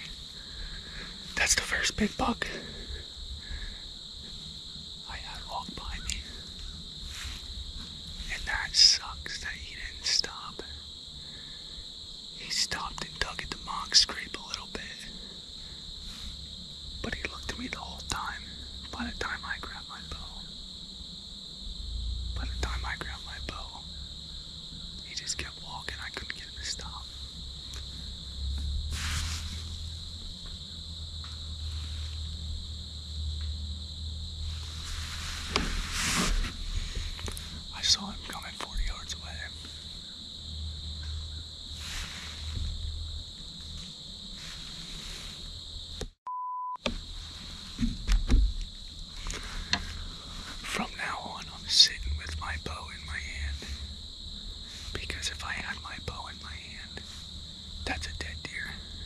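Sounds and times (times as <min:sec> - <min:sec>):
high-pitched insect drone: 0:00.0 - 0:46.2, 0:46.8 - 0:59.0
whispered talk: 0:01.4 - 0:02.8, 0:05.0 - 0:06.5, 0:08.3 - 0:10.8, 0:12.4 - 0:15.1, 0:17.0 - 0:20.5, 0:22.4 - 0:23.9, 0:25.0 - 0:27.2, 0:37.7 - 0:39.7, 0:50.6 - 0:53.8, 0:54.9 - 0:57.1, 0:57.8 - 0:58.9
low rumble: 0:21.5 - 0:22.8
brief rustle: 0:34.5 - 0:37.6
censor bleep: 0:46.2 - 0:46.9.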